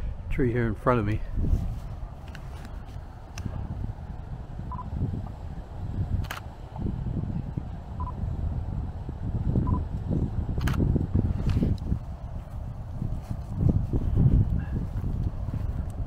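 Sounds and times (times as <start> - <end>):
handheld camera handling rumble: 1.3 - 3.8, 6.0 - 6.7, 9.8 - 16.0
sharp clicks: 10.6 - 11.9.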